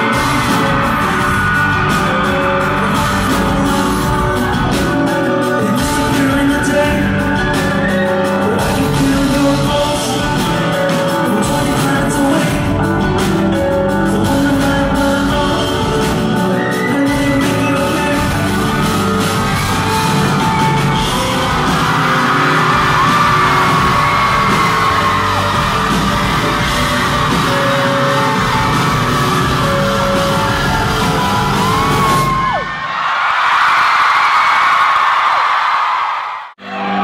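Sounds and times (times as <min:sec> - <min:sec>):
crowd screaming and cheering: 0:00.0 - 0:37.0
live pop-rock concert music: 0:00.0 - 0:37.0.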